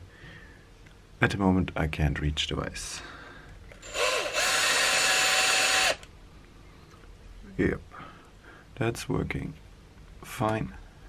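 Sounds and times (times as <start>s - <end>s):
bit cutting metal rod: 3.8s - 6.0s
cordless drill whining: 3.8s - 6.1s.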